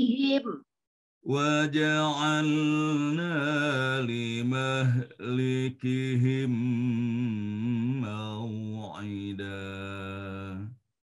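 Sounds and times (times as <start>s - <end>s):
man chanting recitation: 1.3s - 10.8s.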